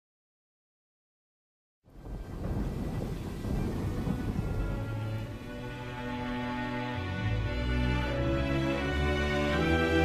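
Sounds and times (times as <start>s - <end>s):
rumbling thunder: 1.9s - 6.3s
rain: 1.9s - 10.0s
held musical notes rising: 3.0s - 10.0s.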